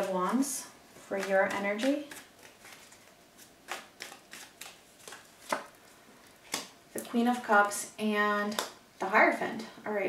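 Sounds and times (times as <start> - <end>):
cards shuffled and flicked: 1.2 - 5.8.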